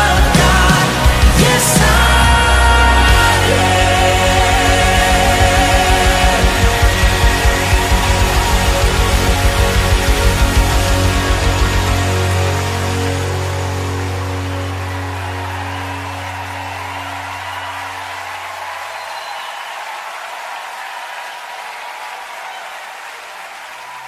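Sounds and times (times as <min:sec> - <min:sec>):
worship band final chord: 0:00.0 - 0:18.3
crowd applauding: 0:00.0 - 0:24.0.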